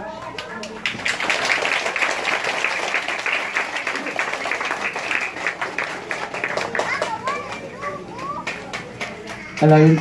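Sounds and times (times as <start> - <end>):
people clapping: 0.2 - 10.0
children chattering and calling: 5.0 - 10.0.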